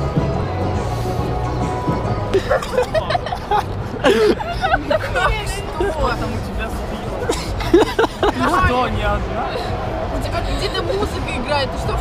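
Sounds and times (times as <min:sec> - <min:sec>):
crowd babble: 0:00.0 - 0:12.0
people talking close by: 0:00.0 - 0:12.0.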